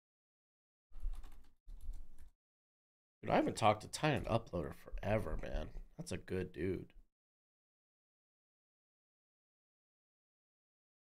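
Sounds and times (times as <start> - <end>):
typing on computer keyboard: 1.0 - 2.3.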